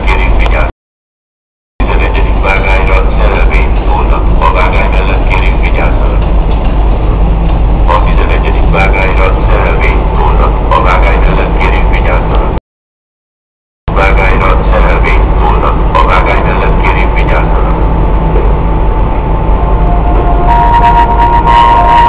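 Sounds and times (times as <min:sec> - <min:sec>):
loudspeaker announcement echoing: 0:00.0 - 0:00.7, 0:01.8 - 0:06.2, 0:07.8 - 0:12.6, 0:13.9 - 0:18.0
wind rumble on microphone: 0:05.9 - 0:10.7, 0:15.1 - 0:22.0.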